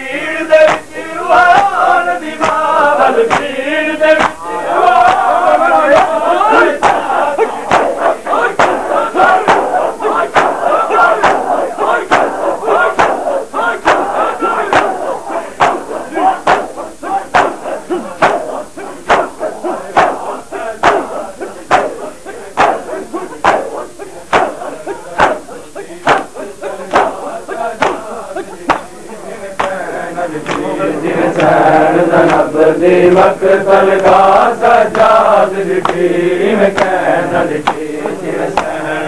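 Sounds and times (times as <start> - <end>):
men shouting and chanting: 0.0 - 39.0
chest slaps in unison: 0.6 - 0.9, 1.5 - 1.8, 2.4 - 3.6, 4.2 - 4.4, 5.0 - 29.0, 29.6 - 29.8, 30.4 - 30.7, 31.4 - 31.6, 35.8 - 36.0, 36.7 - 37.0, 37.6 - 38.8.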